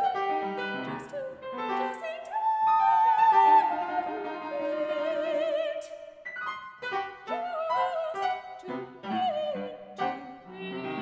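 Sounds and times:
piano playing angular figures: 0.0 - 11.0
soprano singing: 0.0 - 11.0.

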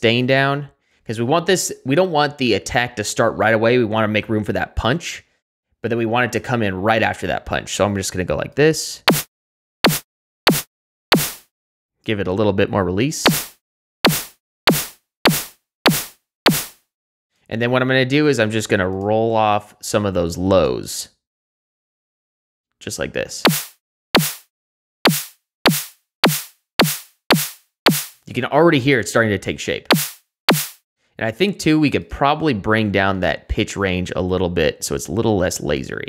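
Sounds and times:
synthesized snare drum hits: 9.1 - 11.5, 13.2 - 16.8, 23.4 - 24.5, 25.1 - 28.2, 29.9 - 30.8.

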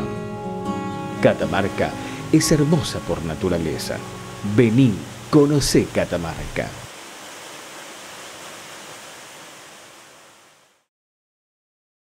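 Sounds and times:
waterfall rushing: 0.7 - 10.9.

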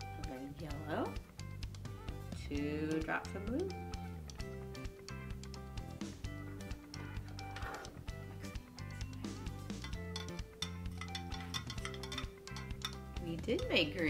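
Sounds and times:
soft background music: 0.0 - 14.0
metal spoon clinking on glass: 9.8 - 14.0.

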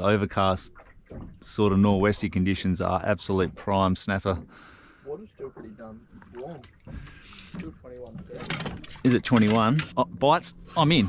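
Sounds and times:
water lapping against small boat: 0.0 - 11.0.

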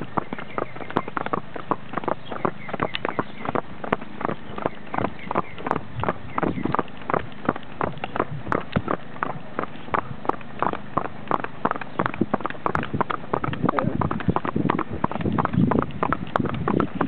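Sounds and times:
horse hooves trotting on asphalt: 0.0 - 17.0.

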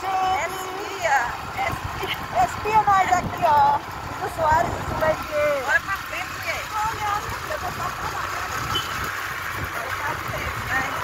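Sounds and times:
road noise: 0.0 - 11.0
voices speaking: 0.0 - 11.0
wind buffeting microphone: 0.0 - 11.0.

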